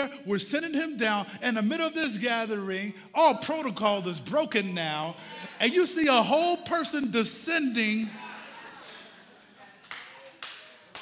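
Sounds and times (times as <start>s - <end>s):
sharp hand claps: 9.8s - 11.0s.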